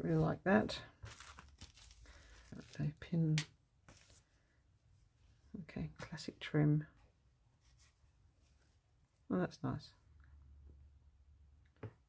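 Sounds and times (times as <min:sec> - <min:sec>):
person speaking: 0:00.0 - 0:01.4, 0:02.4 - 0:04.2
plastic bags crinkling: 0:01.0 - 0:03.0.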